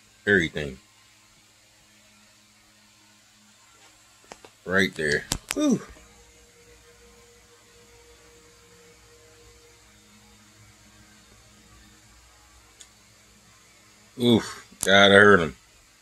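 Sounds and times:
faint steady hum with hiss: 0.0s - 16.0s.

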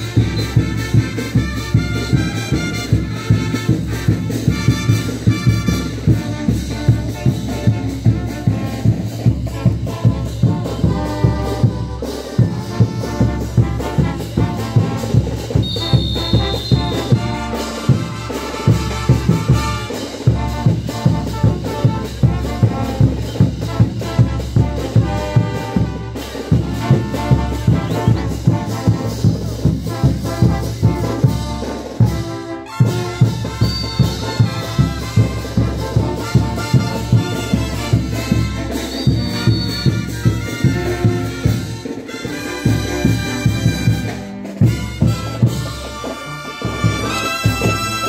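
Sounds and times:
steady drum beat: 0.0s - 48.0s
trumpets and trombones: 0.0s - 48.0s.

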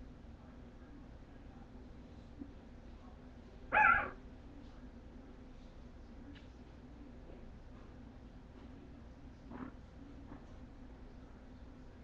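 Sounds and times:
puppy crying: 3.7s - 4.2s.

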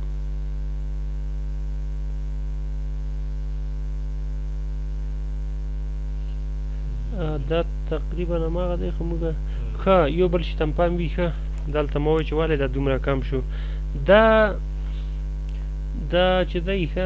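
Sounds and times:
electrical mains hum: 0.0s - 17.0s
man's voice: 6.9s - 14.6s, 15.9s - 17.0s.

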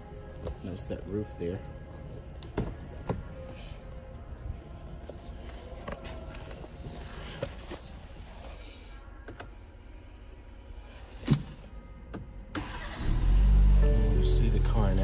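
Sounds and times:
car engine starting: 12.6s - 15.0s.

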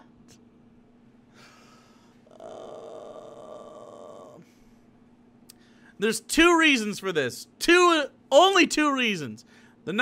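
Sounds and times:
man groaning: 2.3s - 4.4s.

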